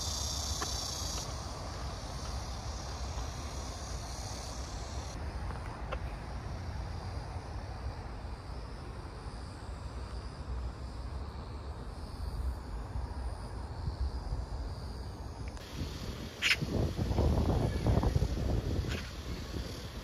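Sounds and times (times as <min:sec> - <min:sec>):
faint steady hiss: 0:00.0 - 0:20.0
wind rumble on microphone: 0:13.4 - 0:20.0.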